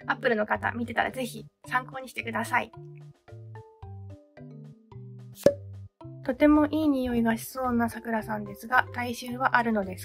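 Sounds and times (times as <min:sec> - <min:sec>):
light background music: 0:00.0 - 0:10.0
sharp pop sound effect: 0:05.4 - 0:05.7.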